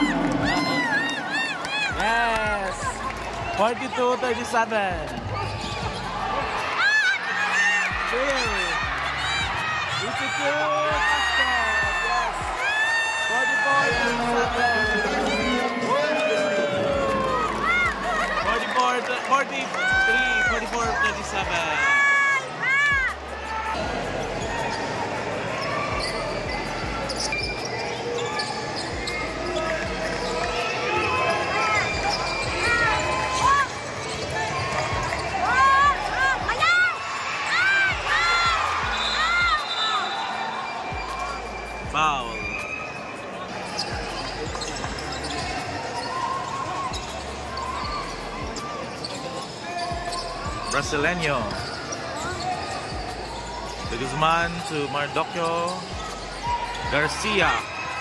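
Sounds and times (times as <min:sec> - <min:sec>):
crowd chatter: 0:00.0 - 0:58.0
sneakers squeaking: 0:00.0 - 0:58.0.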